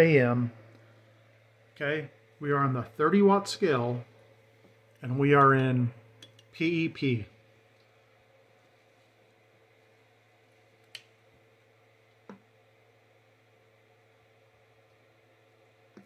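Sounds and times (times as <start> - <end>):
faint room hum: 0.0 - 16.0.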